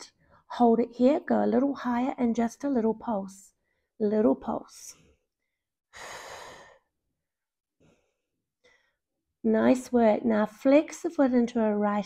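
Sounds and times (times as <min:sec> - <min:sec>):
woman exhaling breathily: 0:05.9 - 0:06.9.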